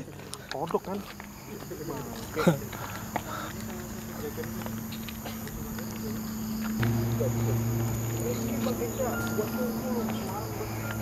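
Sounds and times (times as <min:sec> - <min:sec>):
crickets trilling: 0:00.0 - 0:11.0
low steady hum: 0:01.1 - 0:11.0.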